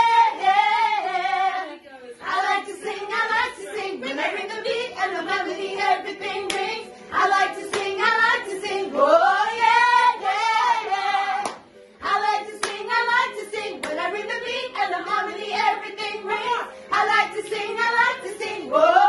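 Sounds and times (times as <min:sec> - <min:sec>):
women singing together: 0:00.0 - 0:19.0
hand claps: 0:06.4 - 0:06.8, 0:07.6 - 0:08.0, 0:11.4 - 0:11.8, 0:12.6 - 0:13.0, 0:13.8 - 0:14.0.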